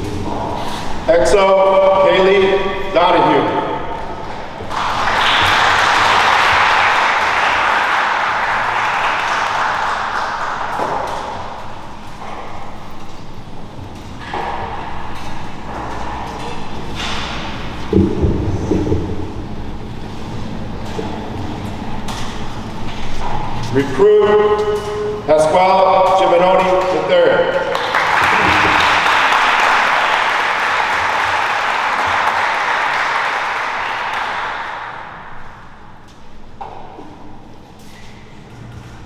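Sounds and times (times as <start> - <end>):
audience applauding: 4.6 - 11.1, 27.6 - 35.2.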